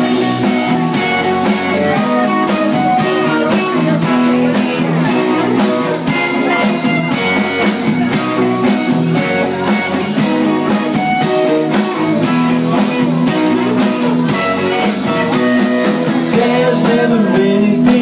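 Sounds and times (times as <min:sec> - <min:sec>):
bass guitar: 0:00.0 - 0:18.0
drum kit steady beat: 0:00.0 - 0:18.0
electric guitars: 0:00.0 - 0:18.0.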